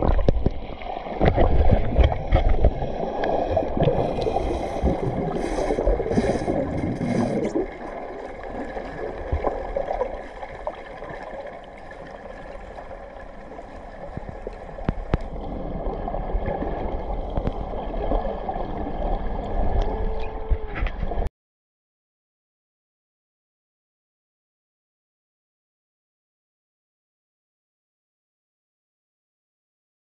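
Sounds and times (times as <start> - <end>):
splashes: 0.0 - 20.6
underwater gurgling and bubbling: 0.0 - 21.3.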